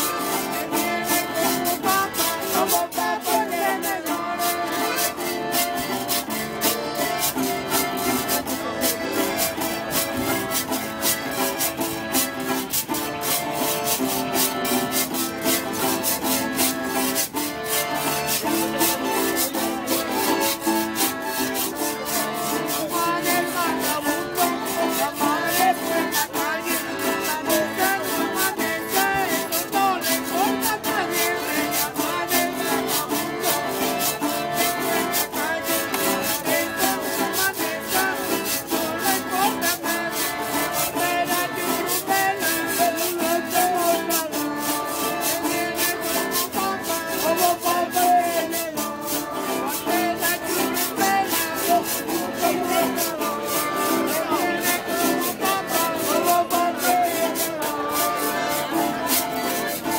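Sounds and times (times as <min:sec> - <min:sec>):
accordion melody: 0:00.0 - 0:59.9
metal scraper rhythm: 0:00.0 - 0:59.9
strummed acoustic guitar: 0:00.0 - 0:59.9.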